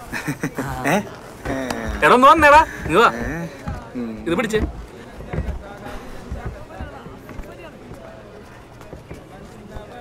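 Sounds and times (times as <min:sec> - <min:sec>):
faint voices: 0:00.0 - 0:10.0
soft low thumps: 0:01.4 - 0:10.0.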